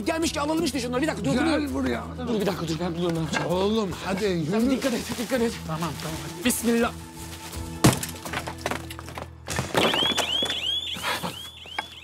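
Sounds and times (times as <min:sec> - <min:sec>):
electronic whooping alarm: 0:09.8 - 0:12.0.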